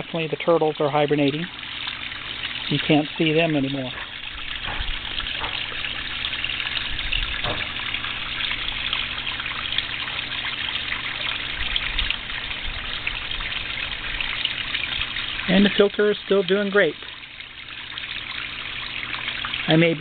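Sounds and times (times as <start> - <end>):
water trickling over rocks: 0.0 - 20.0.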